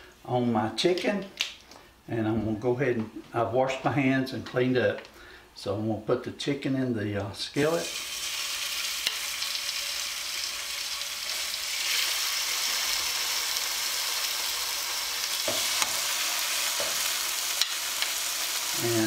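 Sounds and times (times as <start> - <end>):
chicken sizzling in oil: 7.7 - 19.0.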